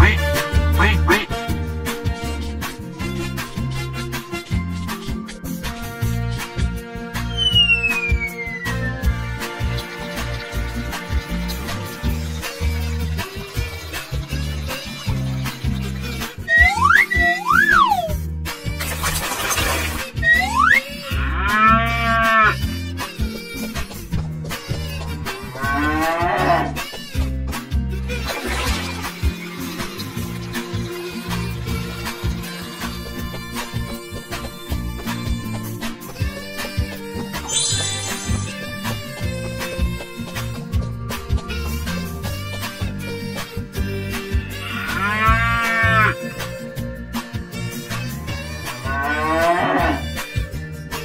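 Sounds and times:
background music with bass line: 0:00.0 - 0:51.0
cow mooing: 0:20.3 - 0:22.6, 0:25.3 - 0:26.8, 0:44.1 - 0:46.2, 0:48.8 - 0:50.1.

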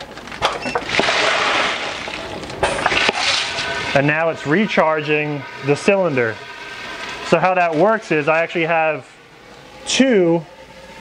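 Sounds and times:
pellets rushing into plastic bag: 0:00.2 - 0:03.9.

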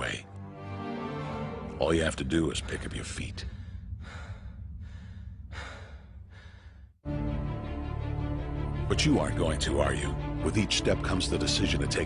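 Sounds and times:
low steady rumble: 0:01.7 - 0:07.0
man breathing hard: 0:03.3 - 0:07.0.

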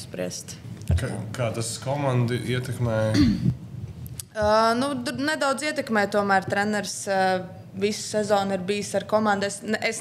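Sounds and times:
person clearing throat: 0:03.1 - 0:03.6
woman speaking: 0:04.2 - 0:10.0.

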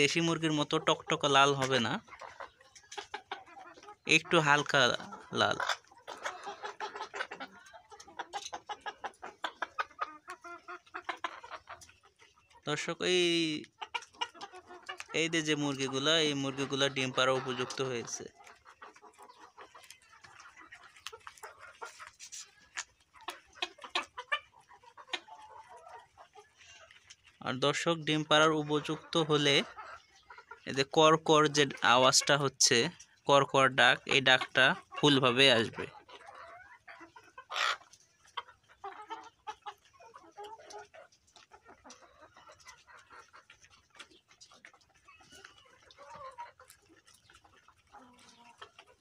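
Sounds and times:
chickens clucking softly: 0:00.0 - 0:49.0.

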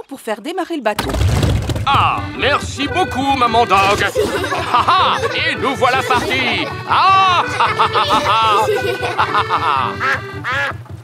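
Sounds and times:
boat engine putt-putt: 0:01.0 - 0:11.0
light background music: 0:01.9 - 0:11.0
cartoon duck quacking: 0:02.2 - 0:10.9.

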